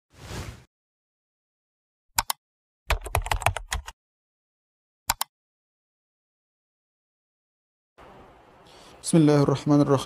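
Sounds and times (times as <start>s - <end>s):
typing on computer keyboard: 2.2s - 3.9s.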